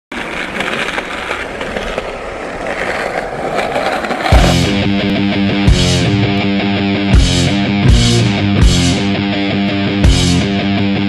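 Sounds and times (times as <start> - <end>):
skateboard wheels rolling on pavement: 0.1 - 7.6.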